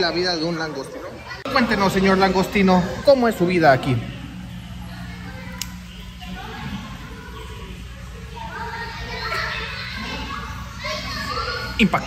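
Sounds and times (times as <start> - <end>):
children's voices: 0.0 - 12.0
people talking: 0.0 - 12.0.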